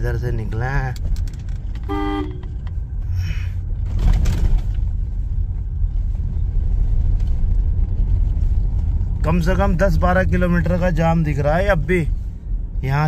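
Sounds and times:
road and engine rumble in car cabin: 0.0s - 13.0s
car horn toot: 1.9s - 2.6s.

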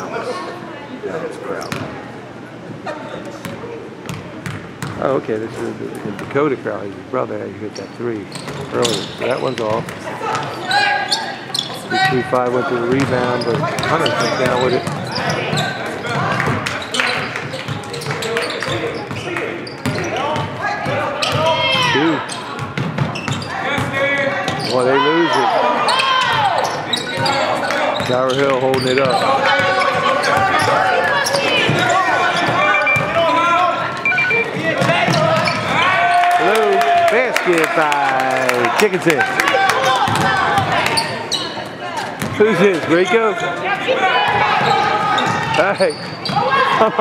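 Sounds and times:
voices echoing in gym: 0.0s - 47.0s
basketball bouncing: 3.4s - 5.0s, 12.9s - 16.8s, 17.4s - 24.7s, 34.4s - 35.8s, 40.0s - 40.9s.

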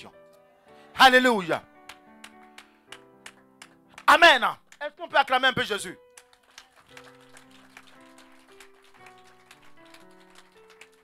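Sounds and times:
soft instrumental music: 0.0s - 11.0s.

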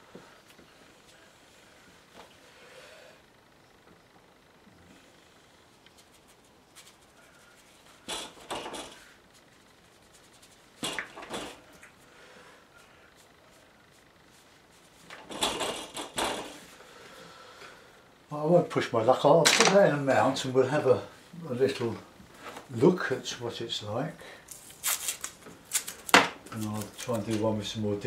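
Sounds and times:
objects knocking and clattering: 8.1s - 9.0s, 10.8s - 11.7s, 15.1s - 16.6s, 19.4s - 19.8s.

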